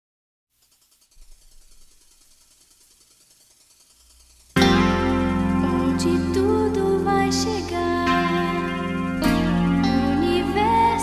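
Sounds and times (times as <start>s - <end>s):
faint rapid ticking: 0.6s - 11.0s
low hum: 3.9s - 11.0s.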